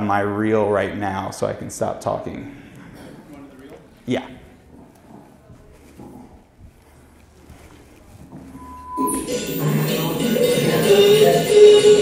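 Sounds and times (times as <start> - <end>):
faint movement sounds: 2.2 - 9.8
steady high tone: 8.6 - 12.0.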